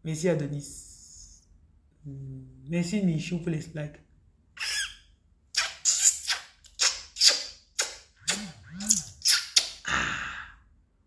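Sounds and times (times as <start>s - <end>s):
woman making breathy mouth sounds: 8.2s - 10.6s.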